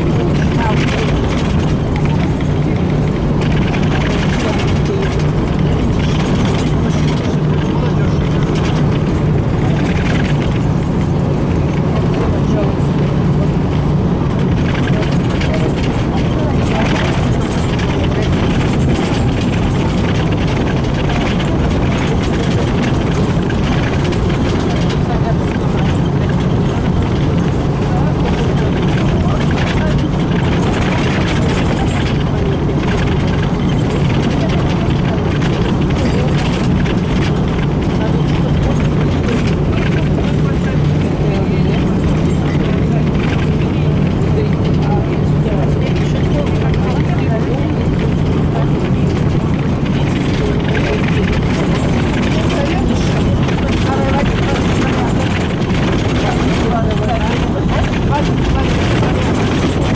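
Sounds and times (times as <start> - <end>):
bus engine droning: 0.0 - 59.9
road and body noise: 0.0 - 59.9.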